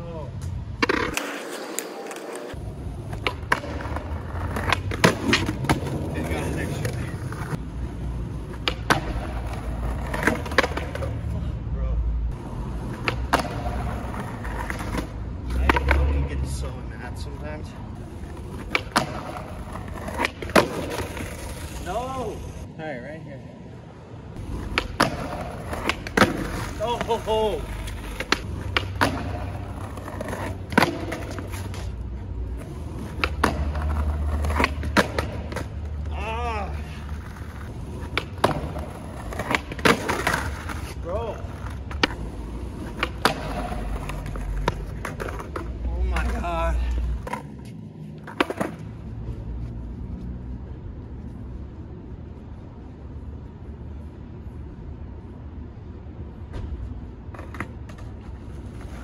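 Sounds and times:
skateboard wheels rolling on asphalt: 0:00.1 - 0:11.6, 0:12.3 - 0:59.0
skateboard clacks: 0:00.5 - 0:07.6, 0:08.3 - 0:11.1, 0:12.8 - 0:16.1, 0:18.0 - 0:21.8, 0:24.4 - 0:31.9, 0:32.6 - 0:36.3, 0:37.0 - 0:48.9, 0:57.3 - 0:59.0.

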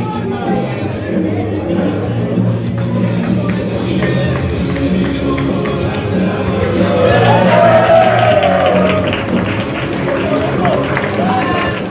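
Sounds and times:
background music: 0:00.0 - 0:11.9
faint crowd noise: 0:00.0 - 0:11.9.

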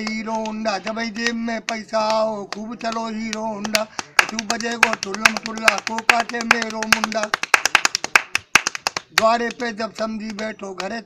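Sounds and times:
man singing folk verse: 0:00.0 - 0:07.6, 0:09.1 - 0:11.0
rapid hand claps: 0:00.0 - 0:11.0.

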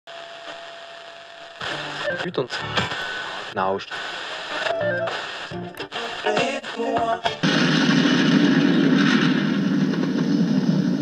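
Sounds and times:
intro music: 0:04.7 - 0:07.5.

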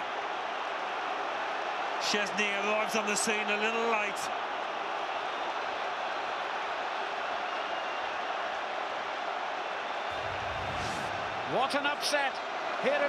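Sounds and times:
stadium crowd cheering: 0:00.0 - 0:13.0
low rumble: 0:10.1 - 0:12.0.

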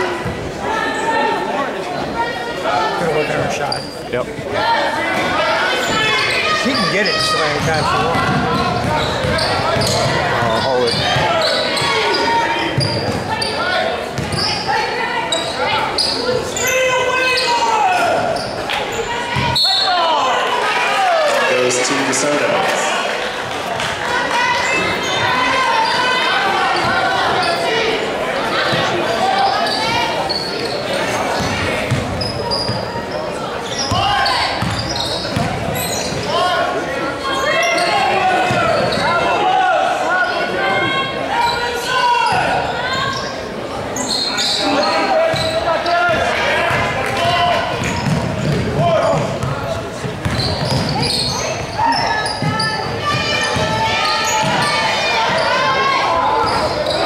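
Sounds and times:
spectators chattering: 0:00.0 - 0:57.0
ball bouncing on wooden court: 0:07.6 - 0:11.3, 0:12.8 - 0:13.3, 0:33.9 - 0:36.2, 0:47.8 - 0:51.7.

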